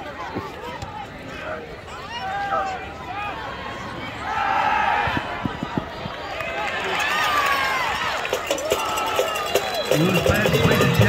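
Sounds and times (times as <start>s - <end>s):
stadium crowd shouting and cheering: 0.0s - 11.0s.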